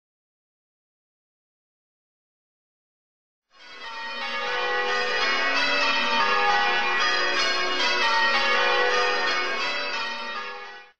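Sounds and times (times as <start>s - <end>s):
peal of bells ringing: 3.6s - 10.9s.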